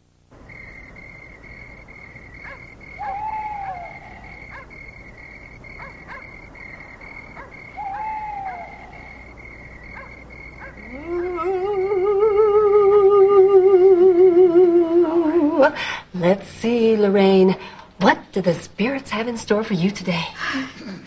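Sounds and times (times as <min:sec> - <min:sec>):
high chirring of insects: 0:00.0 - 0:15.8
owl-like hoot: 0:02.4 - 0:04.7, 0:07.3 - 0:09.3, 0:09.9 - 0:15.4.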